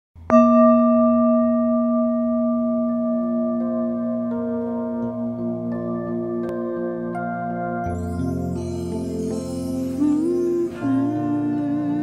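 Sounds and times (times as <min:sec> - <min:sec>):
new-age music: 0:00.2 - 0:12.0
bell ringing: 0:07.8 - 0:12.0.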